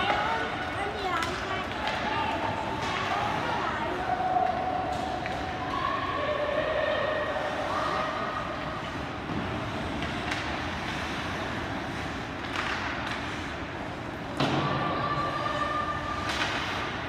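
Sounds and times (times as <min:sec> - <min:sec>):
hockey stick clacks: 0:00.0 - 0:03.5, 0:09.2 - 0:14.7, 0:16.1 - 0:17.0.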